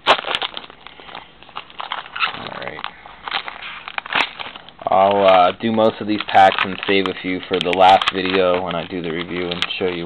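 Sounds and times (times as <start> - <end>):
plastic wrapper crinkling and tearing: 0.0 - 10.0.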